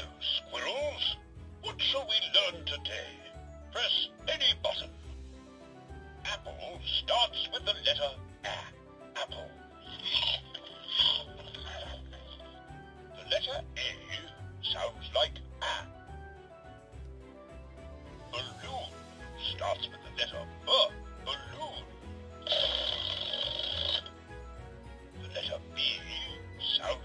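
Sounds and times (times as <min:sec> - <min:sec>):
toy spoken prompts: 0:06.3 - 0:12.3, 0:25.2 - 0:27.0
toy electronic music: 0:06.4 - 0:12.4, 0:18.4 - 0:24.2, 0:25.2 - 0:27.0.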